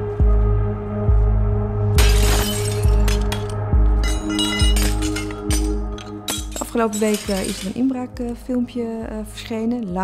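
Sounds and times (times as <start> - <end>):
glass pane shattering: 2.0 - 7.9.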